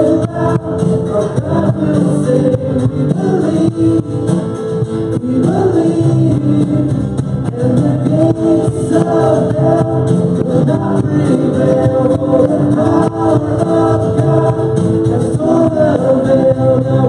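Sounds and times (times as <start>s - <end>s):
male and female voices singing: 0.0s - 17.0s
worship band playing: 0.0s - 17.0s.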